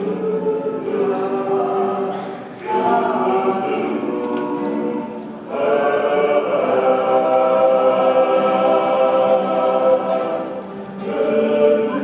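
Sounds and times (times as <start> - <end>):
acoustic guitar: 0.0 - 12.0
men singing in harmony: 0.0 - 12.0.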